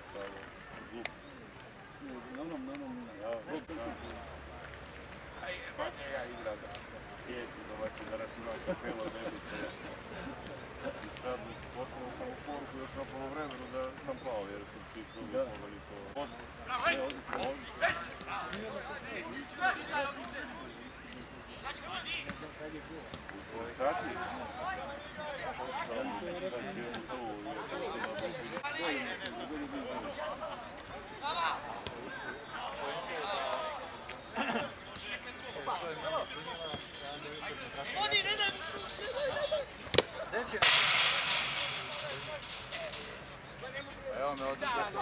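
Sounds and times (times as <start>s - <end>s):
faint men's voices: 0.0s - 45.0s
football being kicked: 39.3s - 40.2s.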